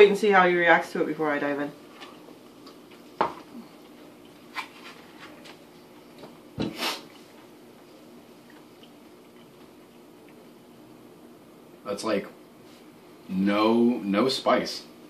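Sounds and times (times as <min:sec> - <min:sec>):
person chewing: 0:08.4 - 0:10.4.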